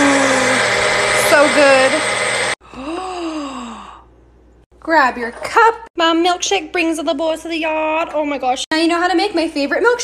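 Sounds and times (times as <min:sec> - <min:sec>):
drawn-out sigh or moan: 0:00.0 - 0:00.7, 0:02.6 - 0:04.2
blender running: 0:00.0 - 0:03.0.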